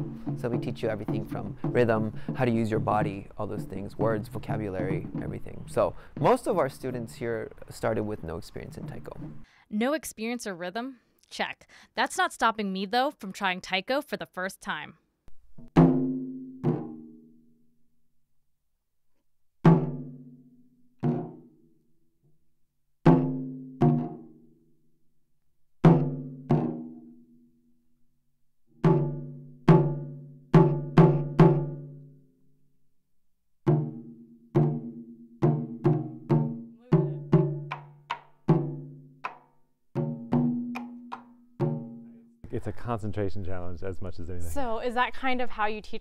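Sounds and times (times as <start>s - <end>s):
taiko drums struck with sticks: 0.0s - 6.4s, 15.6s - 17.0s, 23.1s - 24.3s, 28.8s - 31.9s, 33.7s - 39.4s, 40.0s - 42.0s.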